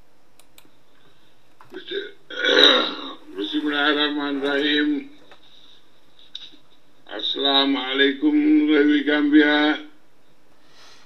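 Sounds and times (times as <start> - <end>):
man talking: 1.7 - 5.2, 6.4 - 10.0
man clearing throat: 1.8 - 3.2.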